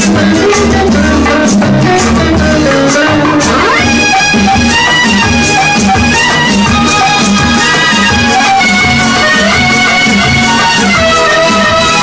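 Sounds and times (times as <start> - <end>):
band playing film music: 0.0 - 12.0.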